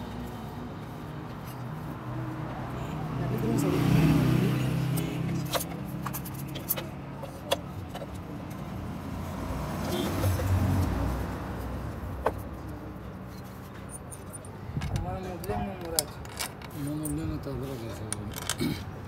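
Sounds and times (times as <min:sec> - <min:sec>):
light metallic clicks and knocks: 0:04.9 - 0:08.7, 0:13.2 - 0:17.3.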